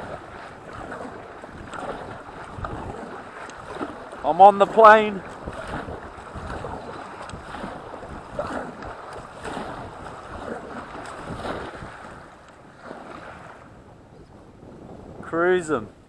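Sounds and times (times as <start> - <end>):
paddle strokes splashing: 0.0 - 13.8
water rushing along hull: 0.0 - 16.0
wind buffeting microphone: 0.0 - 16.0.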